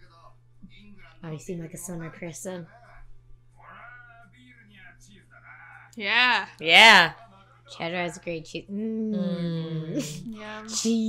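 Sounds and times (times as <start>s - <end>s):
faint dialogue: 0.7s - 11.0s.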